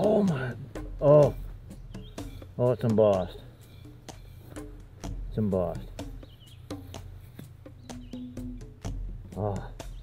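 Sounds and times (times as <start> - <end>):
faint bird chirp: 1.2 - 5.0, 5.8 - 9.0, 9.6 - 10.0.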